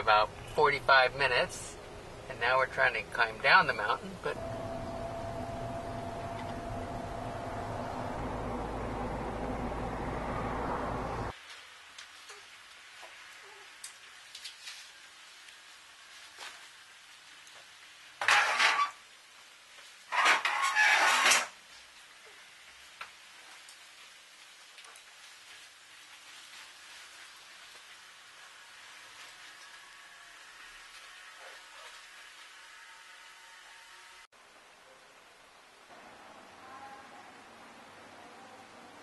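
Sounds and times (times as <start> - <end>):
metal chair scraping on tiled floor: 18.2 - 19.0, 20.1 - 21.5.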